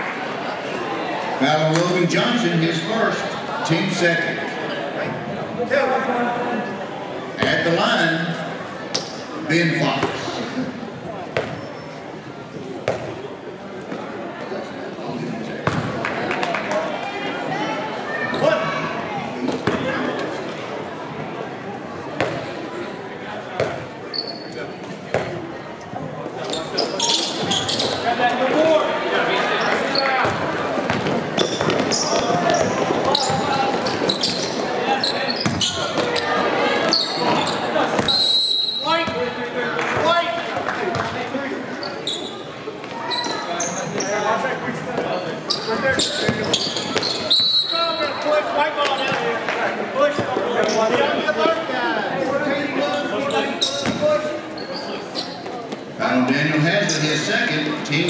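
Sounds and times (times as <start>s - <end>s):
people shouting and talking: 0.0s - 58.0s
sneaker squeaks: 8.9s - 9.3s, 11.4s - 13.2s, 18.2s - 18.7s, 23.6s - 25.3s, 26.4s - 28.2s, 29.6s - 39.2s, 41.7s - 44.3s, 45.0s - 49.2s, 50.6s - 51.0s, 53.2s - 55.9s
ball bouncing on court floor: 11.4s - 11.6s, 12.8s - 13.2s, 15.6s - 16.0s, 22.2s - 22.4s, 23.6s - 23.8s, 30.2s - 33.9s, 53.8s - 54.0s.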